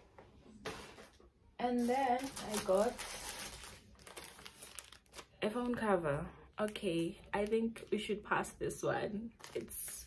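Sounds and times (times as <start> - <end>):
plastic packaging crinkling: 1.7 - 5.8, 9.4 - 10.0.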